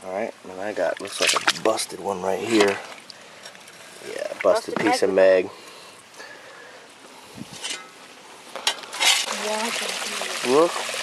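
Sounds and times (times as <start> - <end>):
creek water trickling: 0.0 - 11.0
stream water rushing: 9.1 - 11.0.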